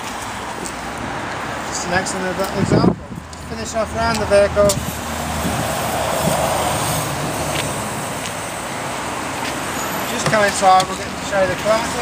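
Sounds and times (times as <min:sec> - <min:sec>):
road traffic rushing past: 0:00.0 - 0:12.0.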